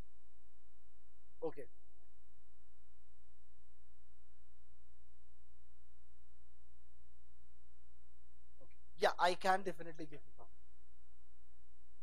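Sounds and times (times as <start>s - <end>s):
faint constant tones: 0.0s - 12.0s
low electrical hum: 0.0s - 12.0s.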